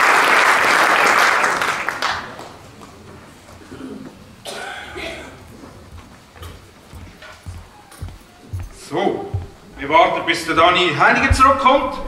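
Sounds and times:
murmured voices in a hall: 1.7s - 12.0s
footsteps on a stage: 5.1s - 12.0s.

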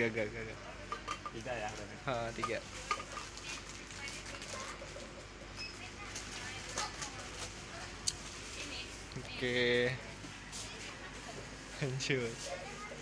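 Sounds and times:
grocery packets rustling in basket: 5.9s - 8.9s.

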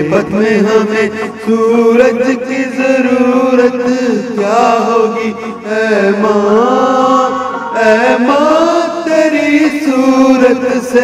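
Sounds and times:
man singing into a microphone: 0.0s - 11.0s
recorded backing track: 0.0s - 11.0s.

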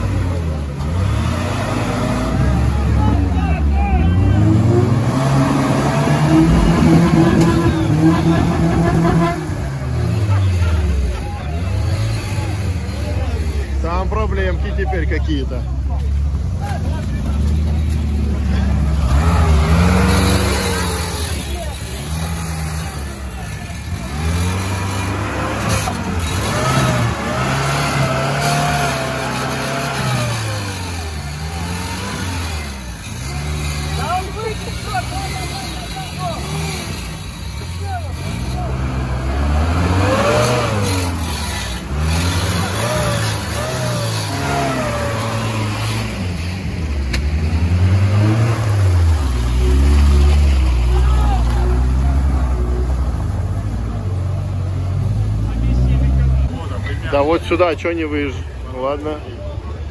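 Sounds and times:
off-road vehicle engine revving: 0.0s - 59.9s
people's voices: 0.0s - 59.9s.

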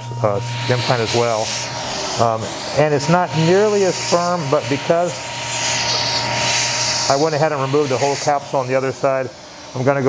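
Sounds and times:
electrocautery hissing sizzle: 0.0s - 10.0s.

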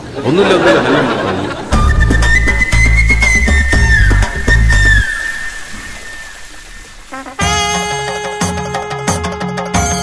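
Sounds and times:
high whistle-like note: 1.7s - 7.9s.

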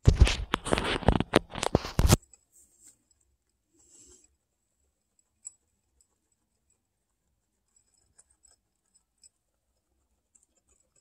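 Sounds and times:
guinea pigs chewing pellets: 0.0s - 11.0s.

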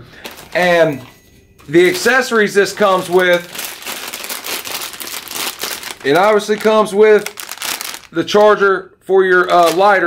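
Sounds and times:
plastic bag crinkling: 0.1s - 8.6s, 9.4s - 10.0s.

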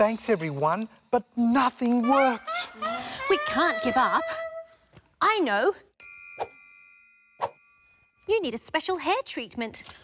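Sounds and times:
triangle chime: 6.0s - 8.5s.

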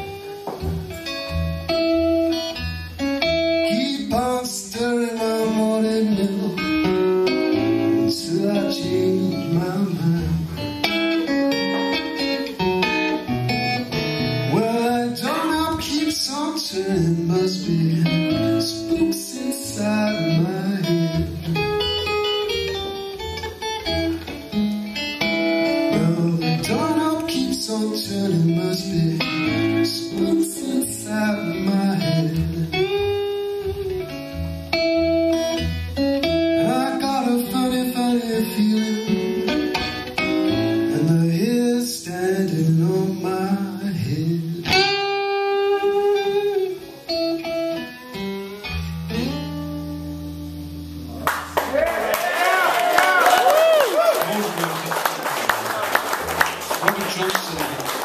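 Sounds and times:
acoustic guitar playing blues: 0.0s - 51.7s.

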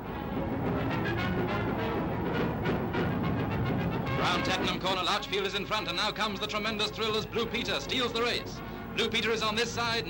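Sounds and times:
orchestral music with brass: 0.0s - 10.0s.

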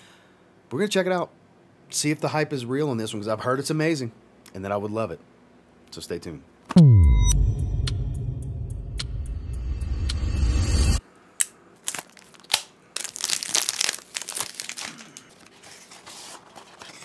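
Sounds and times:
intro sting with bass rumble: 6.8s - 11.0s
cardboard and paper rustling: 11.9s - 17.0s.

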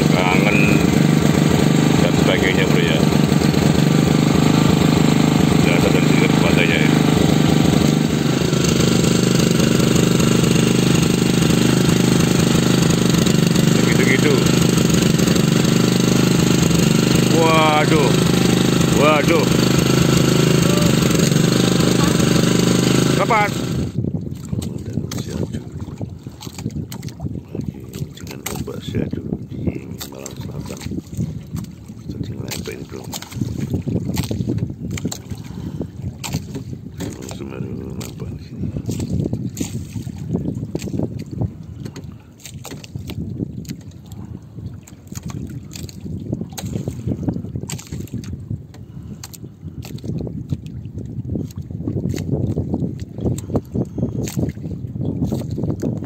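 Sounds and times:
water slapping against hull: 0.0s - 56.0s.

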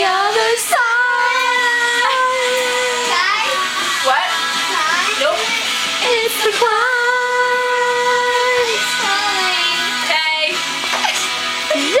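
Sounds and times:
girl singing a long note: 0.0s - 4.0s.

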